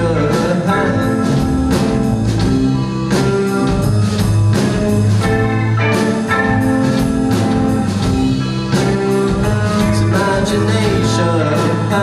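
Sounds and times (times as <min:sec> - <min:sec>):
bass guitar: 0:00.0 - 0:12.0
drum kit beat: 0:00.0 - 0:12.0
electric guitars: 0:00.0 - 0:12.0.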